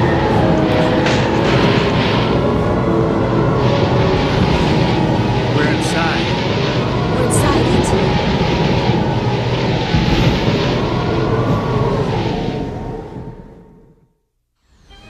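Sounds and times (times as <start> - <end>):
roar of rushing wind: 0.0 - 13.9
deep rumble: 0.0 - 14.2.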